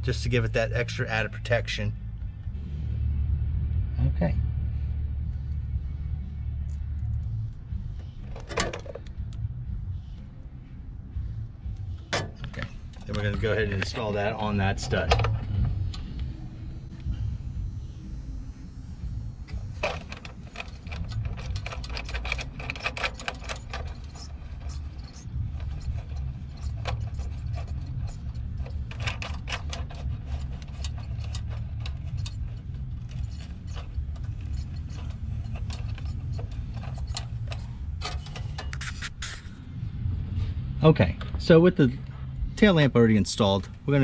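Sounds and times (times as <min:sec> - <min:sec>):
low rumble: 0:00.0 - 0:44.0
metal clicks and clinks: 0:19.6 - 0:38.8.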